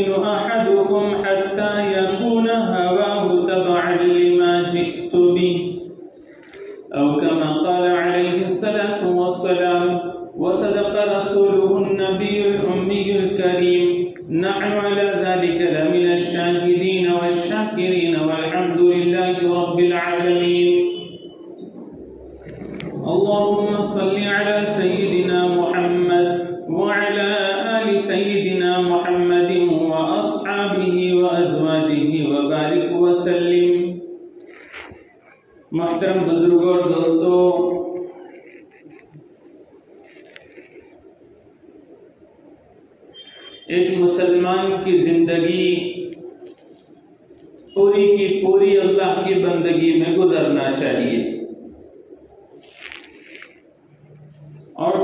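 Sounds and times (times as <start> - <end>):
man chanting melodic recitation: 0.0 - 6.0, 6.7 - 21.3, 22.8 - 34.2, 35.7 - 38.3, 43.6 - 46.3, 47.7 - 51.6, 54.7 - 55.0
person chanting recitation: 22.4 - 34.0.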